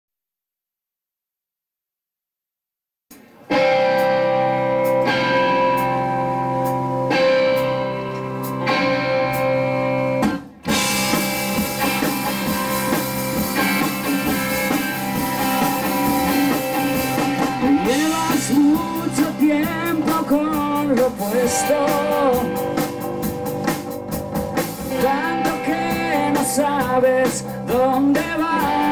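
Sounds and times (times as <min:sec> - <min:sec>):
electric guitar chords: 0:03.1 - 0:28.9
rock band playing: 0:03.1 - 0:28.9.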